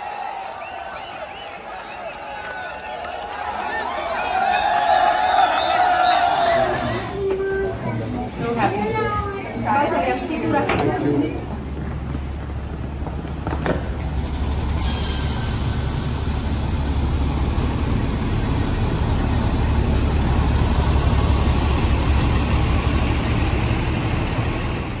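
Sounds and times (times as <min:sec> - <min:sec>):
bus engine idling: 0:00.6 - 0:25.0.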